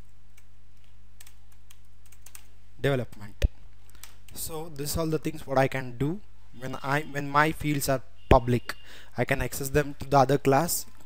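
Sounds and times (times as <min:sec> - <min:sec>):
keyboard typing: 0:00.0 - 0:02.5.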